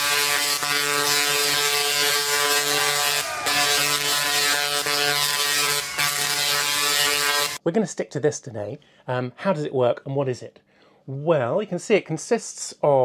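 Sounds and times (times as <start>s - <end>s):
tesla coil electric buzz: 0.0s - 7.6s.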